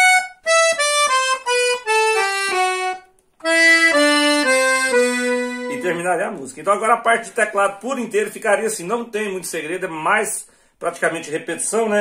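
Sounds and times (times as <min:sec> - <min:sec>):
accordion descending runs: 0:00.0 - 0:06.3.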